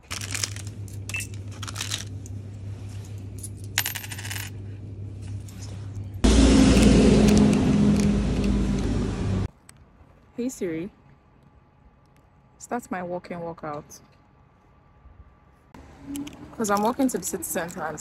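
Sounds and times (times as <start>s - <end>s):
low hum: 0.1s - 9.5s.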